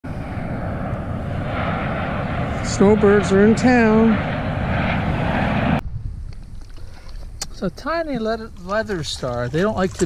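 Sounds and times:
faint jet whine: 0:00.0 - 0:09.1
jet rumble: 0:00.0 - 0:10.0.

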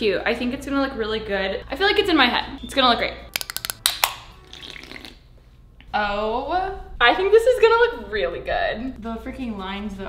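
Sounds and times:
drink can opening clicks: 0:03.4 - 0:04.2.

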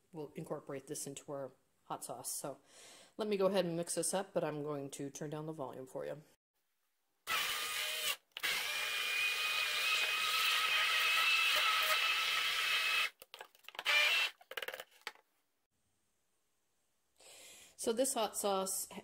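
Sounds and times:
immersion blender whining: 0:07.3 - 0:13.2, 0:13.8 - 0:14.4.

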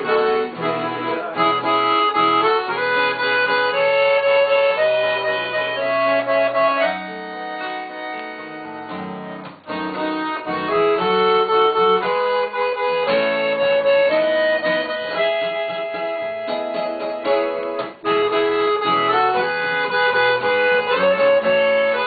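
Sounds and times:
accordion: 0:00.0 - 0:22.0
acoustic guitar: 0:00.0 - 0:22.0.

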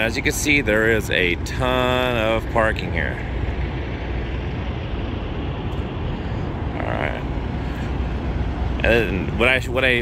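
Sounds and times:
truck stop background noise: 0:00.0 - 0:10.0.

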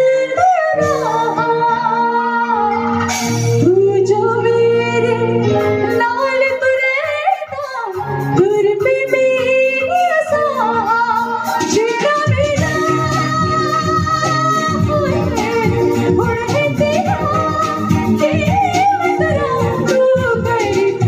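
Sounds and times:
backing music: 0:00.0 - 0:21.0
woman singing into microphone: 0:00.0 - 0:21.0.

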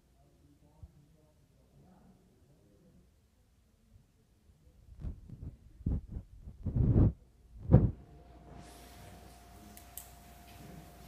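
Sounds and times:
microphone handling thumps: 0:04.9 - 0:08.0.

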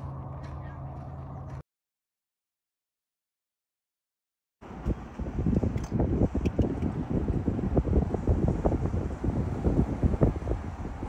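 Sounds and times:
car moving slowly: 0:00.0 - 0:01.6, 0:04.6 - 0:11.0
wind buffeting microphone: 0:04.6 - 0:11.0.

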